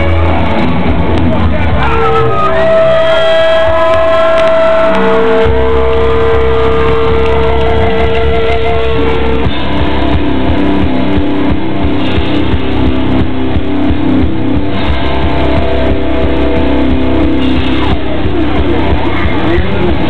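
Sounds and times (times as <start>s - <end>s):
heavy metal band playing live: 0.0s - 20.0s
long held guitar notes: 0.0s - 20.0s.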